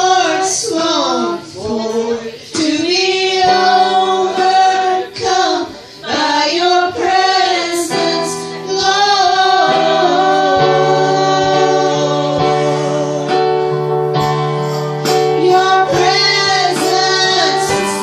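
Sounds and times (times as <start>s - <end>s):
women singing a church song: 0.0s - 13.9s, 15.0s - 18.0s
electronic keyboard: 0.0s - 18.0s.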